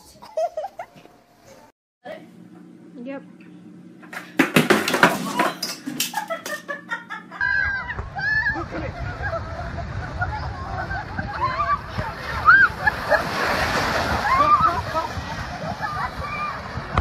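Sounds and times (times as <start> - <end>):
skateboard clattering on concrete: 4.1 - 6.5
excited voices: 7.3 - 16.9
low rumble: 7.4 - 17.0.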